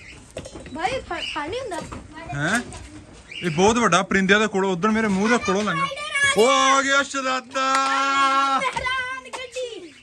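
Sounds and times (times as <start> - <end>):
man speaking: 6.4 - 8.6.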